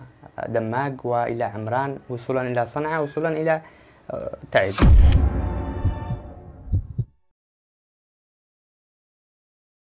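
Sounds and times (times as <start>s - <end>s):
deep thumps: 4.8s - 7.2s.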